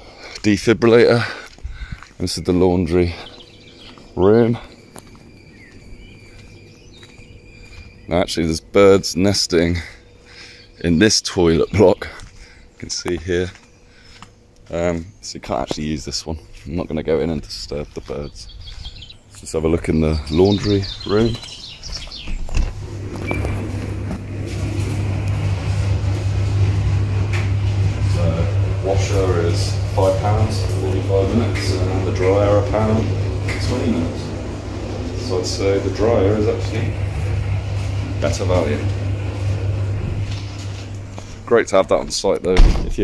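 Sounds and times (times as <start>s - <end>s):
laundry machine humming: 0.0s - 15.0s, 18.9s - 43.0s
small birds chirping: 0.2s - 23.7s
low rumble: 22.4s - 41.5s.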